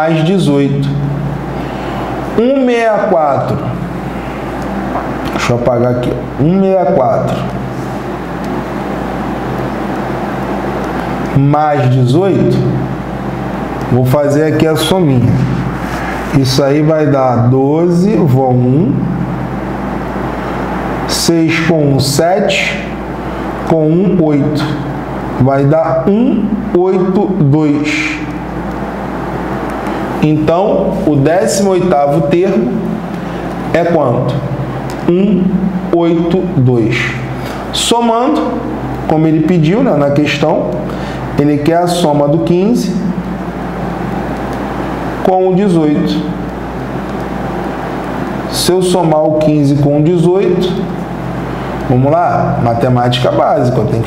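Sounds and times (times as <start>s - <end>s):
low hum: 0.0s - 54.0s.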